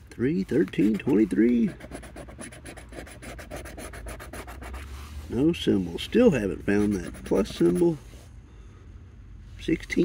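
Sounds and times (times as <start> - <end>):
scratching lottery ticket: 0.4 - 4.9, 6.2 - 8.0.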